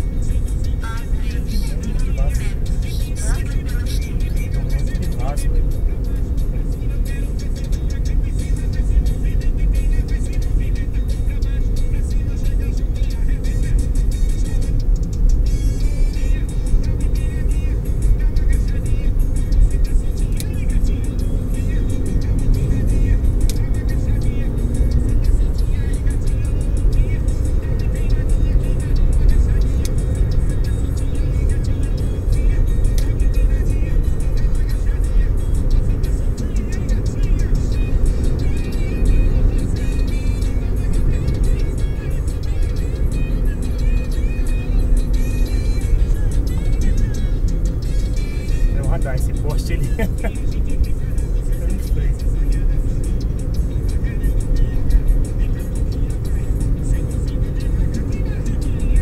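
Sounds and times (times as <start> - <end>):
car road and engine rumble: 0.0 - 59.0
music playing quietly: 0.0 - 59.0.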